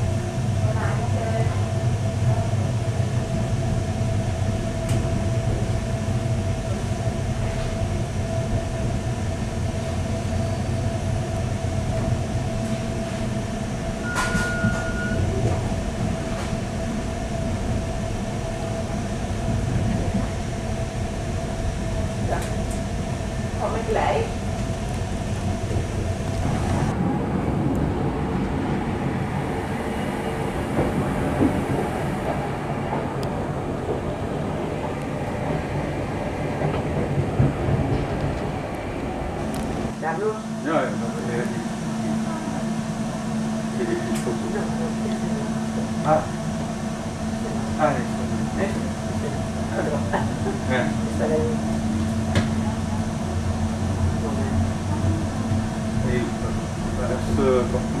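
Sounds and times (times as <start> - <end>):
train coach rumbling on track: 0.0 - 58.0.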